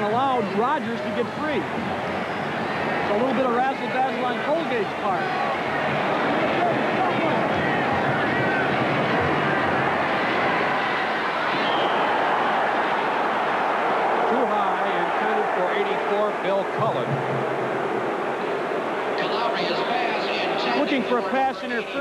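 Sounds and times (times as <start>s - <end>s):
louder voices in crowd: 0.0s - 22.0s
stadium crowd din: 0.0s - 22.0s.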